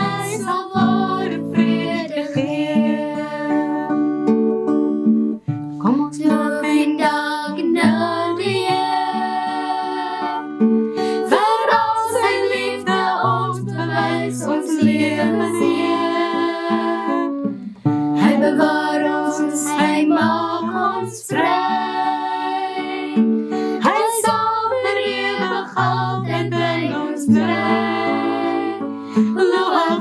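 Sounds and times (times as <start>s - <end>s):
woman and girls singing hymn: 0.0s - 4.0s, 6.2s - 17.4s, 18.2s - 30.0s
strummed acoustic guitar: 0.0s - 30.0s.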